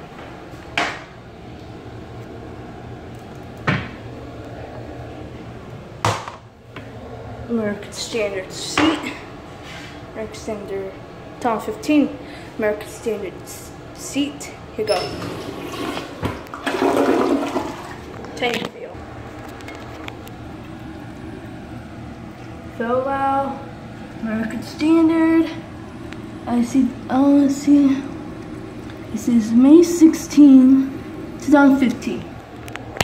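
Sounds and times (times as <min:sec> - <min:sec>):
low room hum: 0:00.0 - 0:33.0
water rushing into toilet bowl: 0:15.1 - 0:18.1.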